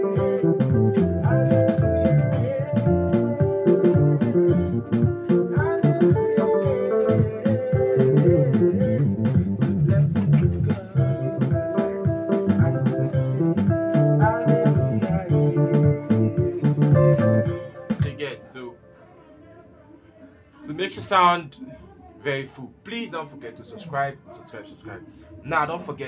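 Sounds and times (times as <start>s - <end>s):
bass: 0.0s - 18.3s
plucked guitar-like tones: 0.0s - 18.5s
electronic keyboard groove: 0.0s - 18.7s.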